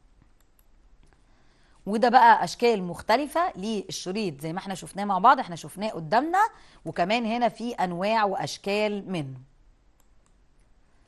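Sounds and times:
woman speaking: 1.8 - 9.5
faint clicks: 10.0 - 10.8.

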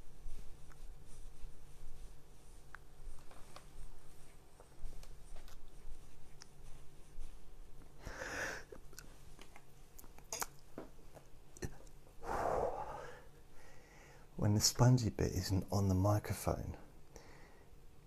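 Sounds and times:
soft noisy puffs: 0.0 - 15.7, 16.4 - 18.0
small clicks and scrapes: 2.6 - 6.6.

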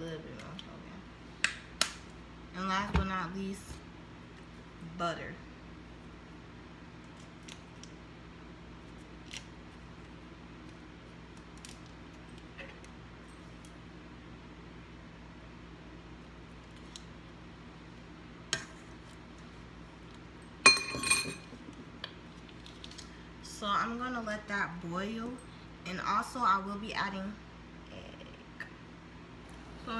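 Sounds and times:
steady low hum: 0.0 - 29.9.

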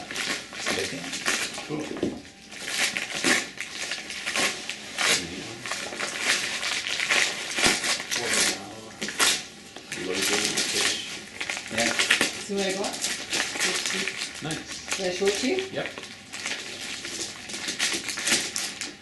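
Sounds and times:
wrapping paper tearing: 0.0 - 19.0.

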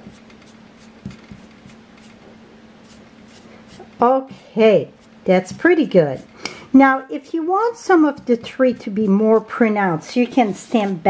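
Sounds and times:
brush swishing on cardstock: 0.0 - 4.0, 4.9 - 6.4, 8.2 - 11.0
faint steady hum: 0.0 - 11.0.

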